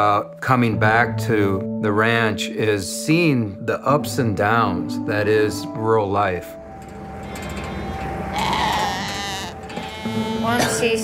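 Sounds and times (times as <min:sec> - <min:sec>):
sheep bleating: 0:07.2 - 0:11.0.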